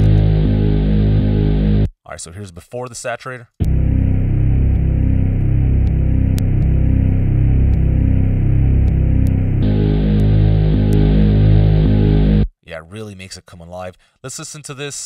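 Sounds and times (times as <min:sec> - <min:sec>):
repeating bass line: 0:00.0 - 0:01.9, 0:03.6 - 0:12.5.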